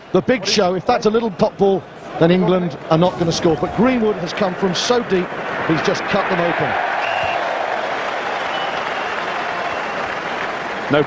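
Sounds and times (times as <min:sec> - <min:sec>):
stadium crowd cheering and clapping: 0:03.7 - 0:11.0.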